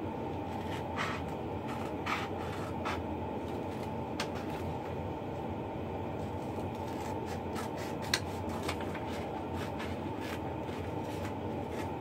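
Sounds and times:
low room hum: 0:00.0 - 0:12.0
paper being handled: 0:06.3 - 0:12.0.

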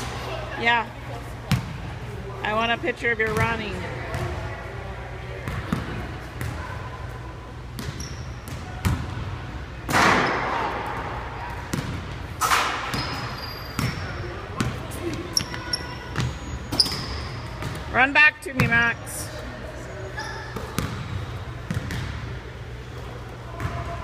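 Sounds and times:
basketballs bouncing on hardwood: 0:03.2 - 0:04.4, 0:20.6 - 0:22.2
short high squeaks: 0:15.4 - 0:17.5, 0:20.1 - 0:20.6.

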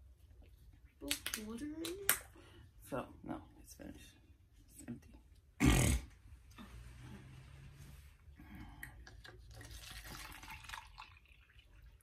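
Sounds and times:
woman burping: 0:05.6 - 0:06.1.

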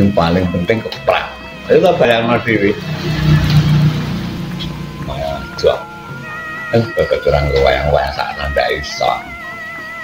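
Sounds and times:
vehicle engine running: 0:02.5 - 0:05.6.

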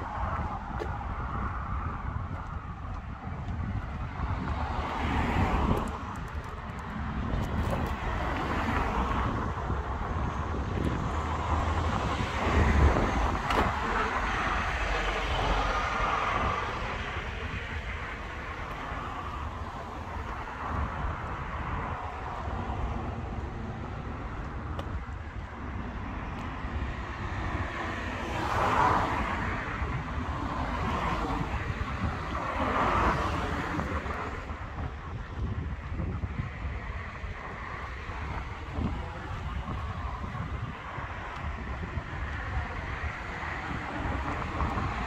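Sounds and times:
cars passing: 0:00.0 - 0:45.0.

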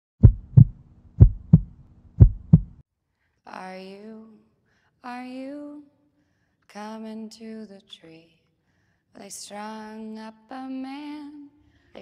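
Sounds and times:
heartbeat thumps: 0:00.2 - 0:02.8.

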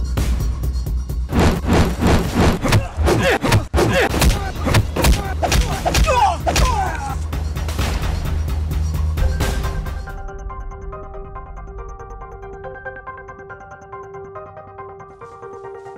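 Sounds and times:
bass-heavy music: 0:00.0 - 0:13.6
punch and hit sound effects: 0:01.3 - 0:06.8.

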